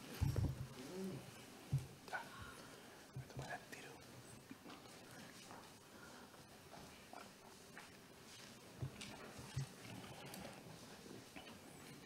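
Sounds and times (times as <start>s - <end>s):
faint murmured voices and whispering: 0.0s - 12.0s.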